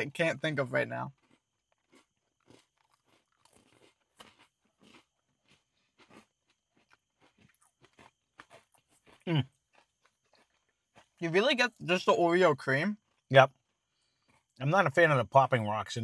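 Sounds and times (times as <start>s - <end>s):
cookie crunching being chewed: 0.8s - 11.8s.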